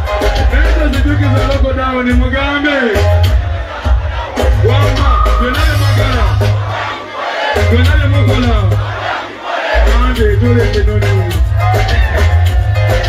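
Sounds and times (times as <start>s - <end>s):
loud live music with bass: 0.0s - 9.1s, 9.7s - 13.0s
crowd yelling: 0.0s - 10.4s, 11.0s - 13.0s
performer shouting into microphone: 4.6s - 6.5s.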